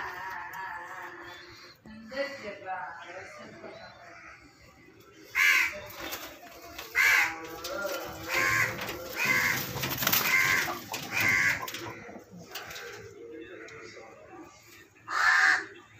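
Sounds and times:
bird giving harsh calls: 8.2 - 12.1.

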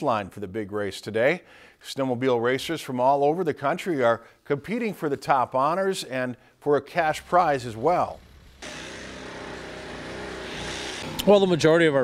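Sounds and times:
vehicle engine running: 7.1 - 11.3.

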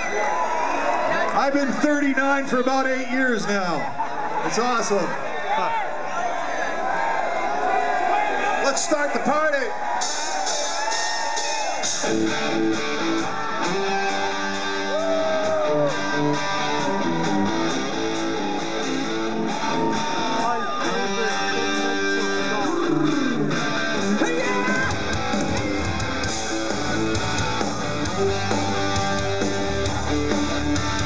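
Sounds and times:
electric guitar riff: 11.8 - 31.0.

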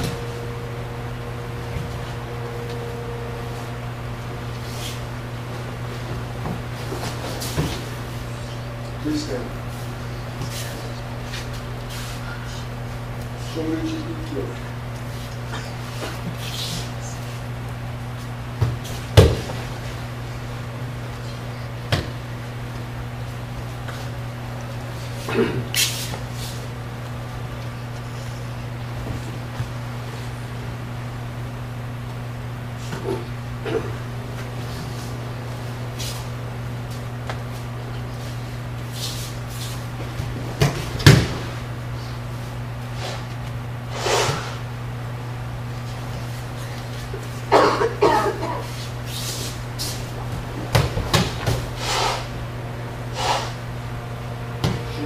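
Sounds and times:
low room hum: 0.0 - 55.0
body thudding onto padded mat: 18.6 - 19.7
person coughing: 25.2 - 25.7, 33.6 - 34.0, 47.5 - 48.7.

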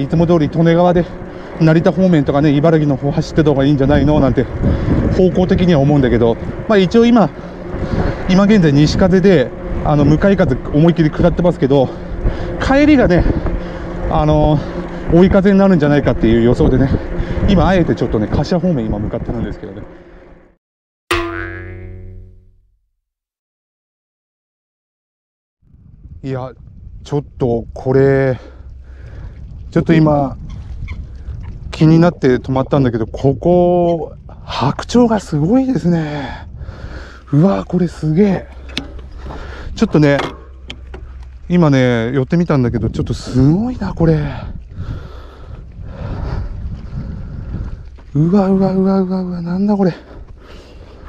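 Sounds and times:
wind buffeting microphone: 0.0 - 20.0, 25.6 - 51.0
comic boing sound effect: 21.1 - 22.6.

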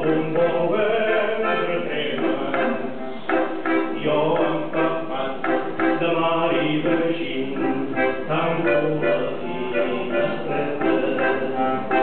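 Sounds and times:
button accordion playing: 0.0 - 12.0
man singing: 0.0 - 12.0.

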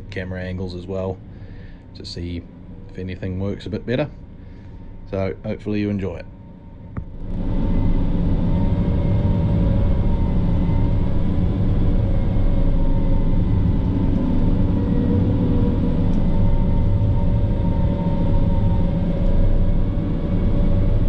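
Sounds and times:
snow groomer engine drone: 0.0 - 21.0.

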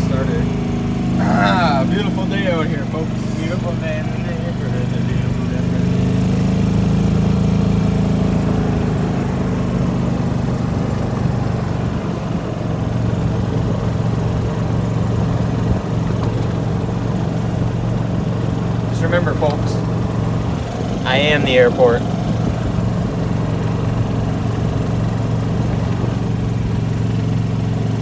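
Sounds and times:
golf cart engine running: 0.0 - 28.0.

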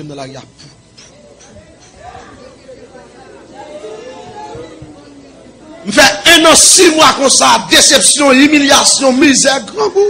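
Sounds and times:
faint voices talking: 0.0 - 6.0
loud speech: 0.0 - 10.0.

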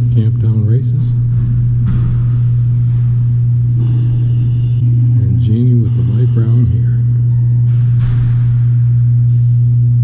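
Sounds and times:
faint higher tones: 0.0 - 10.0
loud low hum: 0.0 - 10.0.

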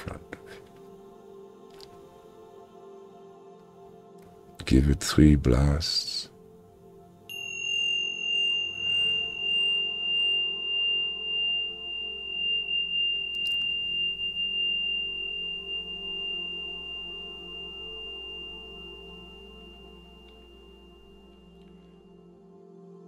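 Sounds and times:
low steady drone: 0.0 - 23.0
high metallic chime ringing: 7.3 - 22.3.

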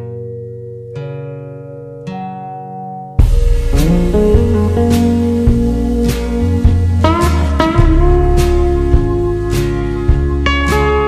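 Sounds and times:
slowed-down guitar chords: 0.0 - 11.0.

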